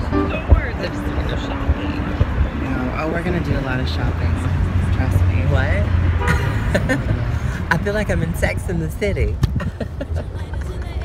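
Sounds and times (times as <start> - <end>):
car interior rumble: 0.0 - 11.0
voices talking: 0.0 - 11.0.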